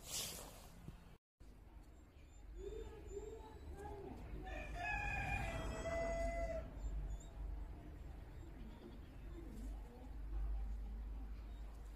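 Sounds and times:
rooster crowing: 4.4s - 6.9s.

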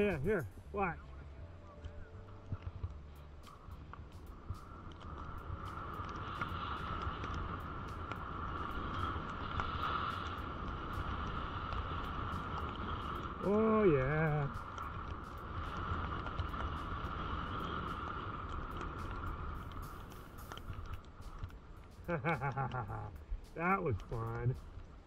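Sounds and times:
wind rumbling on microphone: 0.0s - 25.0s
snow hissing under sliding rider: 3.5s - 25.0s.

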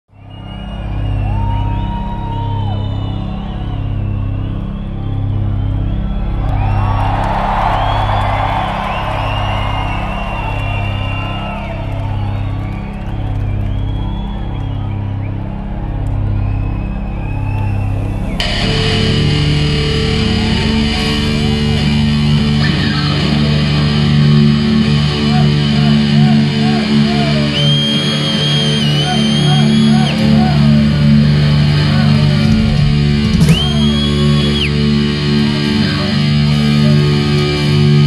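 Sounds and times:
crowd cheering and whooping: 0.1s - 38.0s
slow pulsing low beat: 30.8s - 35.8s.

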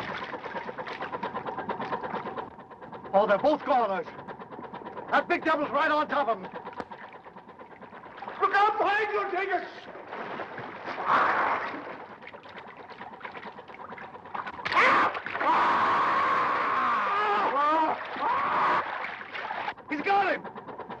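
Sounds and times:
water splashing and churning: 0.0s - 21.0s
people yelling and screaming: 14.7s - 19.1s.

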